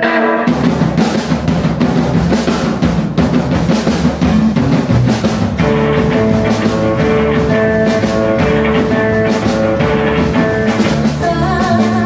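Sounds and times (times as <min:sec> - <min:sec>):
busy drum kit: 0:00.0 - 0:12.0
live electric band playing: 0:00.0 - 0:12.0.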